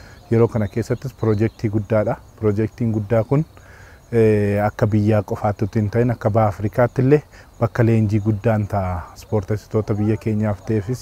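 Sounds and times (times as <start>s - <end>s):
man speaking: 0.0s - 11.0s.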